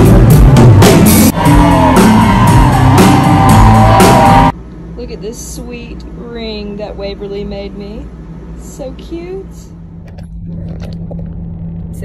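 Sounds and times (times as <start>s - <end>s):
bus engine rumble and hum: 9.4s - 12.0s.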